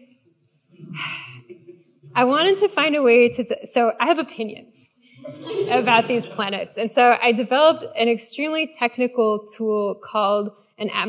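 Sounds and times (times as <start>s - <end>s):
woman breathing: 1.0s - 1.4s.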